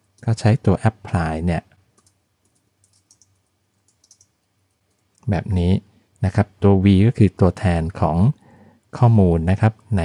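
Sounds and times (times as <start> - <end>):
faint keyboard typing clicks: 0.0 - 0.4, 1.7 - 5.3.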